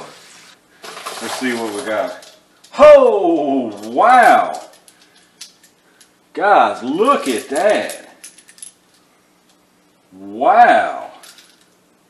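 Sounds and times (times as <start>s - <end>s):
brass cartridge cases clinking: 7.1s - 9.6s.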